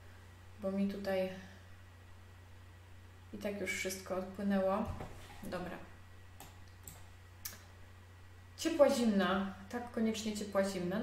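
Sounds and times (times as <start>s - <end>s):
low steady hum: 0.0s - 11.0s
computer clicks: 6.4s - 7.6s.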